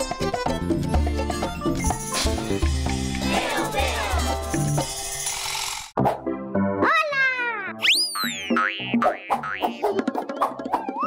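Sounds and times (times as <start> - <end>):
bouncy theme with plucked notes: 0.0 - 4.8, 6.0 - 11.0
children's tv jingle music: 0.2 - 5.3
cartoon boing effects: 7.8 - 11.0.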